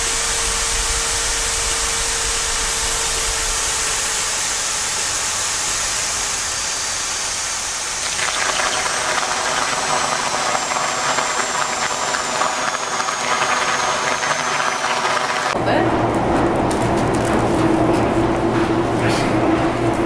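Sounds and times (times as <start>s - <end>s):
mechanical running noise with hiss: 0.0s - 15.6s.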